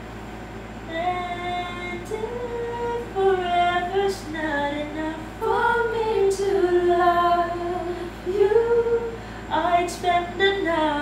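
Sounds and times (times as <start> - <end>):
woman singing: 0.9 - 11.0.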